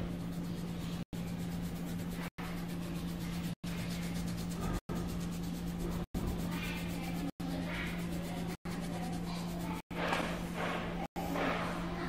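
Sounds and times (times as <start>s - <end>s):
pencil scratching on paper: 0.0s - 11.8s
low electrical hum: 0.0s - 12.0s.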